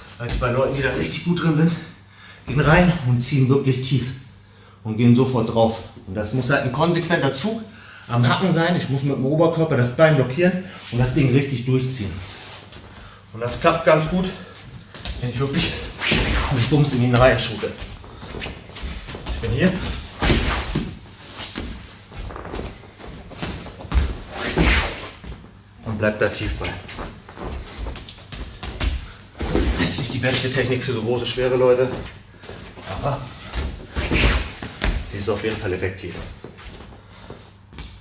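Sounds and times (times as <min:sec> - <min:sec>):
soft footsteps on a mat: 0:00.0 - 0:01.0, 0:12.5 - 0:25.6, 0:26.4 - 0:30.7, 0:31.4 - 0:38.0
clothing rustling: 0:15.5 - 0:25.6.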